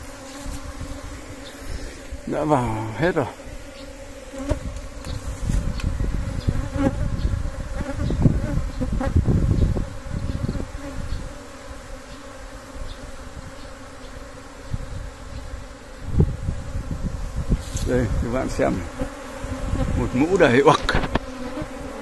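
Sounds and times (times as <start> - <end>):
bees buzzing: 0.0 - 22.0.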